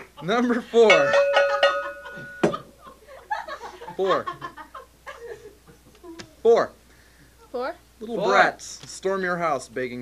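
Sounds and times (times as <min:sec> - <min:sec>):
steady ringing tone: 0:00.8 - 0:02.7.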